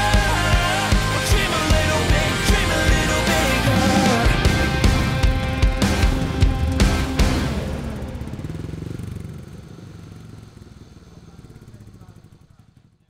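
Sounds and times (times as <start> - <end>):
rock band final chord ringing: 0.0 - 8.6.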